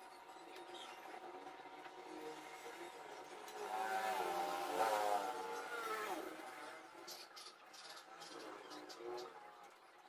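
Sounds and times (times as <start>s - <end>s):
vehicle passing by: 2.2s - 7.1s.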